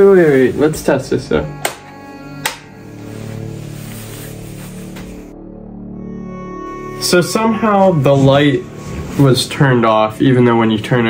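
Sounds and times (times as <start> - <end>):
background music with held tones: 0.0 - 11.0.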